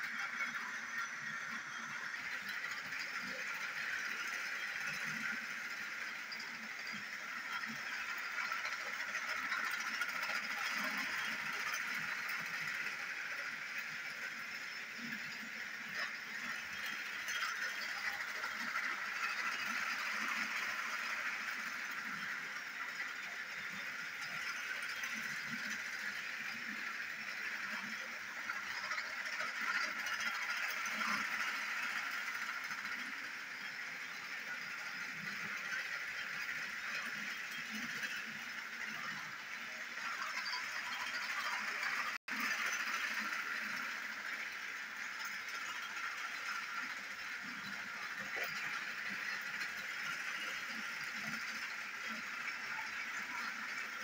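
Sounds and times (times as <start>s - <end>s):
toy train motors whirring: 0.0s - 54.0s.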